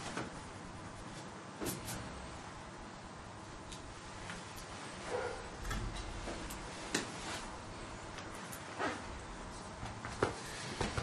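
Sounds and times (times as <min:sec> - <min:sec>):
faint room noise: 0:00.0 - 0:11.0.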